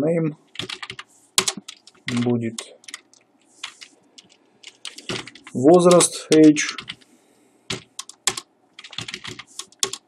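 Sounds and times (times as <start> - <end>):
computer keyboard keys clicking: 0.6 - 7.1, 7.7 - 10.0.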